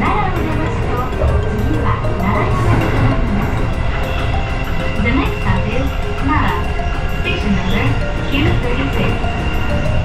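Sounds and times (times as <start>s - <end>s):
background music: 0.0s - 10.0s
train rumbling on track: 0.0s - 10.0s.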